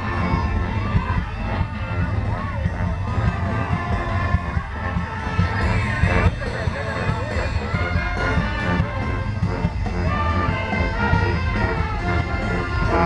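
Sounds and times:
marching brass band playing: 0:00.0 - 0:13.0.

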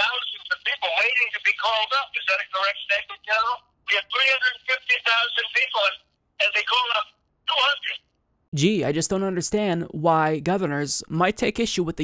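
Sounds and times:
person talking over telephone: 0:00.0 - 0:08.7.

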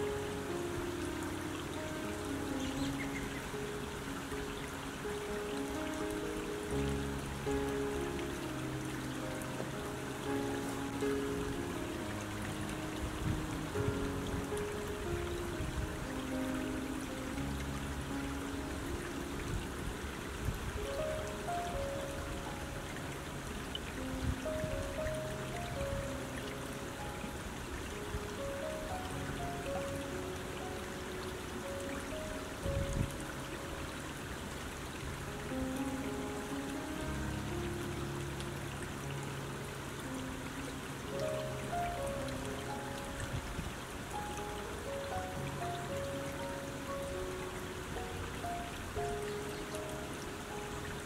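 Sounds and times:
creek flowing over stones: 0:00.0 - 0:51.0
soft ambient music: 0:00.0 - 0:51.0.

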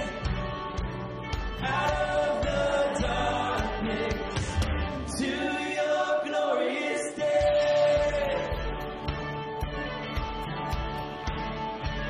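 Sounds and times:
man singing: 0:00.0 - 0:00.3, 0:01.6 - 0:08.9
acoustic guitar: 0:00.0 - 0:12.0.

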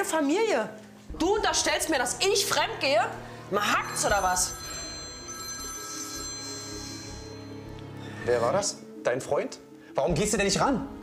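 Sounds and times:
mobile phone ringing: 0:03.6 - 0:07.7.

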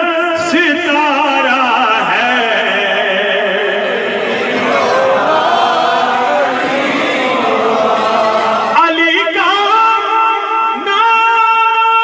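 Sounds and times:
man chanting devotional poem: 0:00.0 - 0:04.2, 0:08.2 - 0:12.0.

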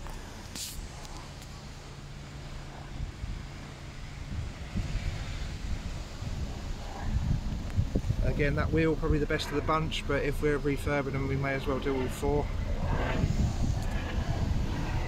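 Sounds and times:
steady low hum: 0:00.0 - 0:15.0
wind on microphone: 0:00.0 - 0:15.0.

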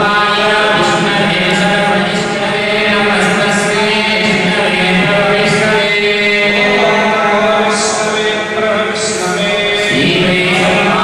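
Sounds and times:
men chanting into microphones: 0:00.0 - 0:11.0.

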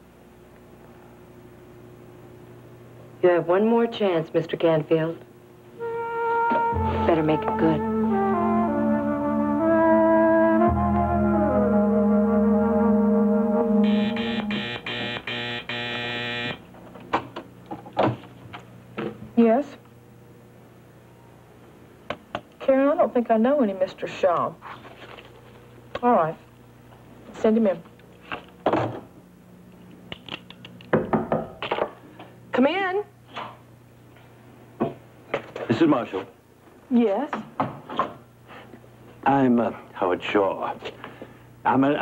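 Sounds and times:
brass and synthesizer chord: 0:05.8 - 0:16.6
phone intercom buzzer pulses: 0:13.8 - 0:16.7.

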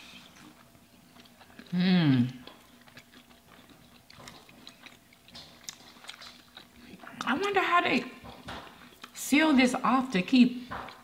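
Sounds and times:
faint chewing: 0:00.0 - 0:09.2.

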